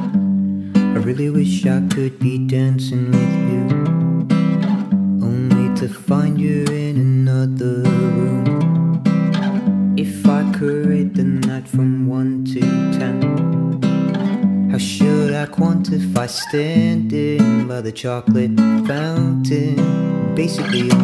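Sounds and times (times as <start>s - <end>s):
strummed acoustic guitar chords: 0.0s - 21.0s.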